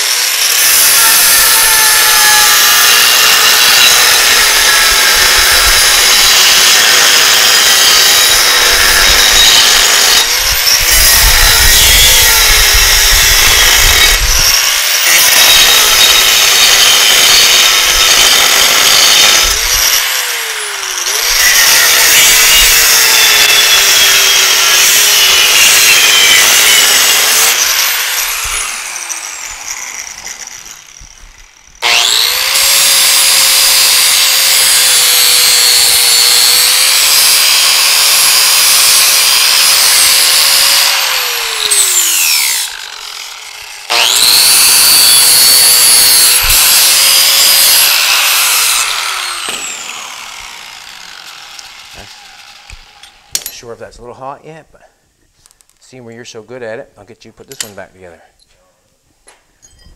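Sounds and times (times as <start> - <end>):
angle grinder cutting steel: 0.0 - 53.7.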